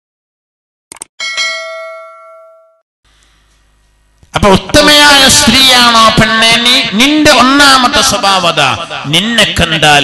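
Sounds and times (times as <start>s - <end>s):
bright bell ding: 1.2s - 2.8s.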